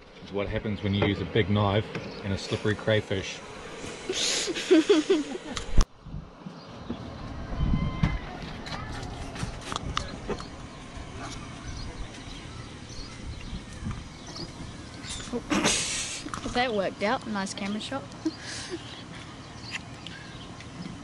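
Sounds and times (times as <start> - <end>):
low steady rumble: 0.0 - 21.0.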